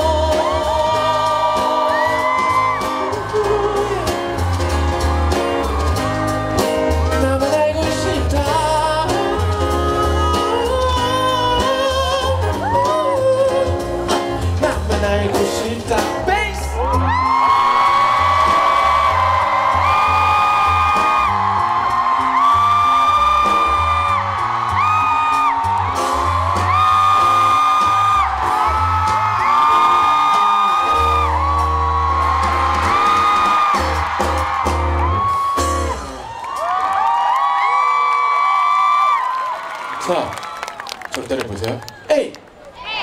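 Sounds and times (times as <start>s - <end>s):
crowd whooping: 0.0s - 7.6s, 10.1s - 13.6s, 16.7s - 43.0s
live pop band playing: 0.0s - 37.4s.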